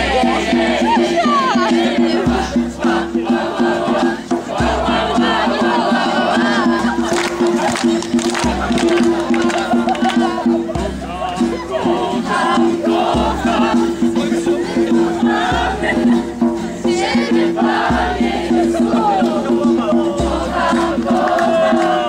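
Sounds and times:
acoustic guitars strumming: 0:00.0 - 0:22.0
group singing and shouting: 0:00.0 - 0:22.0.

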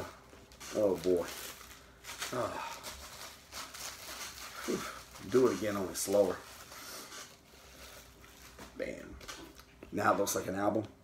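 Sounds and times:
plastic shrink wrap rustling: 0:00.0 - 0:10.9.

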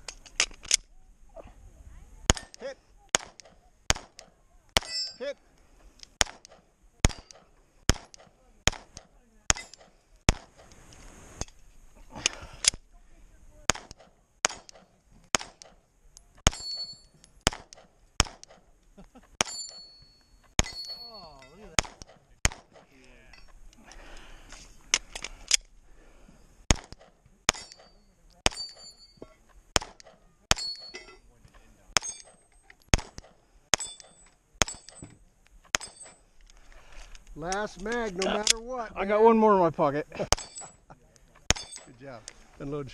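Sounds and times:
pistol shots: 0:02.3 - 0:05.0, 0:06.2 - 0:10.6, 0:13.7 - 0:15.8, 0:17.4 - 0:18.7, 0:20.6 - 0:21.1, 0:21.8 - 0:22.9, 0:26.7 - 0:28.9, 0:29.8 - 0:30.9, 0:32.0 - 0:35.0, 0:40.3 - 0:40.7, 0:41.4 - 0:41.9
ring of struck steel targets: 0:04.8 - 0:05.3, 0:16.4 - 0:17.6, 0:19.4 - 0:22.0, 0:26.7 - 0:31.3, 0:32.0 - 0:35.1, 0:35.7 - 0:36.2, 0:40.3 - 0:40.8, 0:41.5 - 0:41.9.

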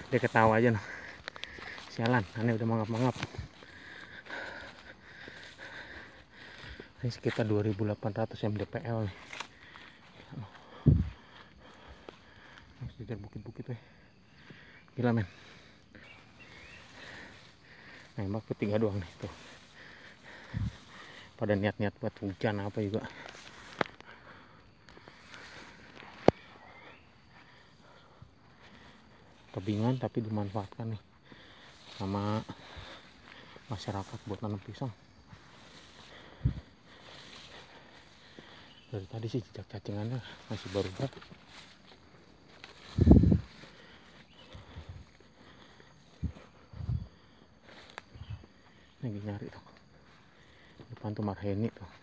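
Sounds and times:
footsteps through undergrowth: 0:00.0 - 0:12.8, 0:15.4 - 0:51.0.

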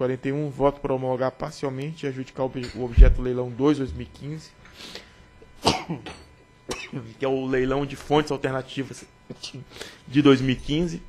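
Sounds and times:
person coughing: 0:05.6 - 0:07.0.

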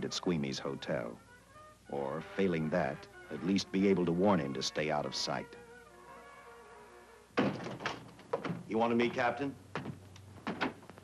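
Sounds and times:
sustained film score notes: 0:00.0 - 0:10.2
sudden thunk: 0:07.4 - 0:08.6.

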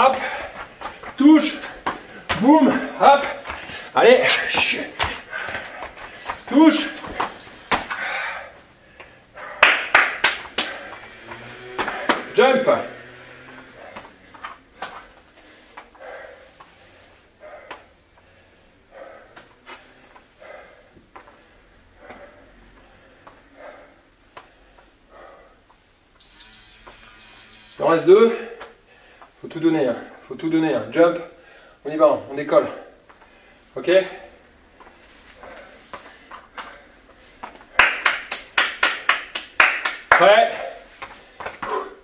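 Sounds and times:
footfalls on floor: 0:00.0 - 0:08.0, 0:10.4 - 0:15.9
man gasping and panting: 0:00.0 - 0:25.8, 0:32.5 - 0:37.8, 0:40.5 - 0:42.0.

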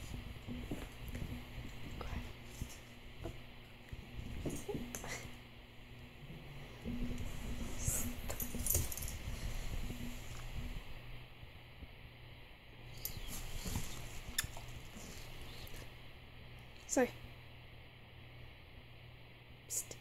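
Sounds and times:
low steady hum: 0:00.0 - 0:20.0
rustling of dog moving: 0:12.9 - 0:15.9.

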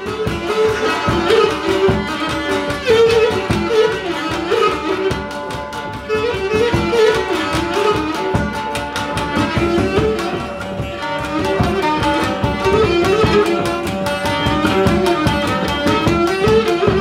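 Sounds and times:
drum dance beat: 0:00.0 - 0:17.0
lute strumming: 0:00.0 - 0:17.0.

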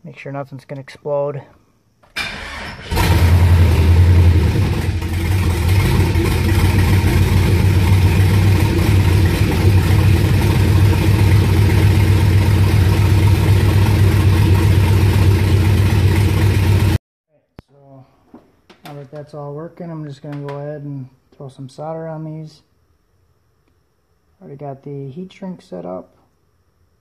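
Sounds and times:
car engine idling: 0:02.9 - 0:17.0.

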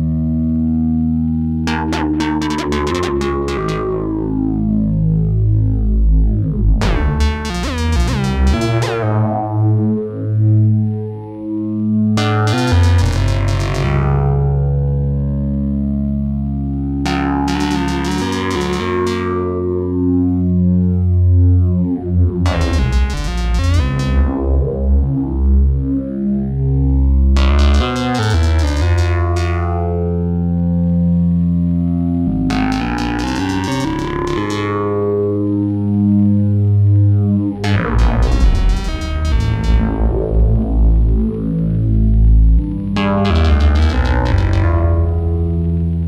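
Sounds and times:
synthesizer low sustained note: 0:00.0 - 0:46.0
sharp synth note with echoes: 0:37.8 - 0:41.5.

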